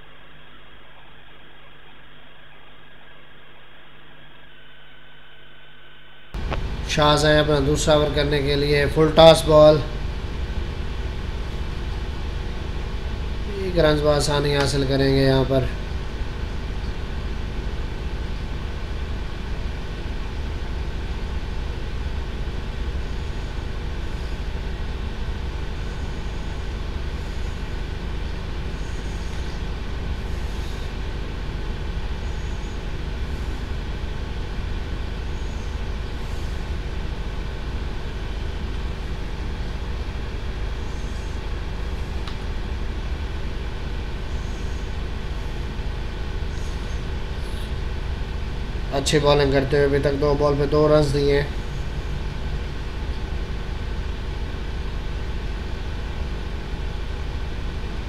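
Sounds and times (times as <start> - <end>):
low rumble with steady hum: 0.0 - 58.0.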